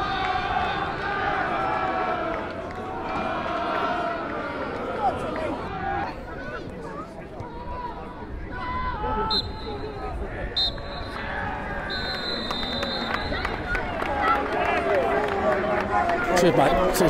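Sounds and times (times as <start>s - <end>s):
crowd noise: 0.0s - 17.0s
referee's whistle blasts: 9.2s - 9.9s, 10.5s - 11.2s, 11.8s - 13.6s.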